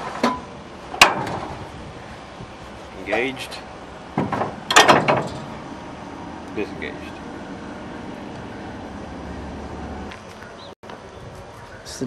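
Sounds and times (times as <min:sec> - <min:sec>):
metallic clunk: 0:00.0 - 0:01.6, 0:04.1 - 0:05.6
lever clanking rattle: 0:04.2 - 0:05.6.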